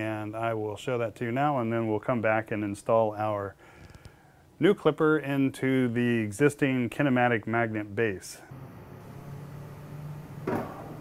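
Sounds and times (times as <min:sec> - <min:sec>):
brief knock: 0:10.4 - 0:11.0.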